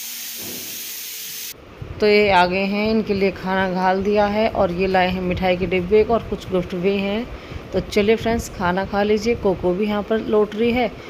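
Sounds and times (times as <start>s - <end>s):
steady hiss: 0.0s - 1.6s.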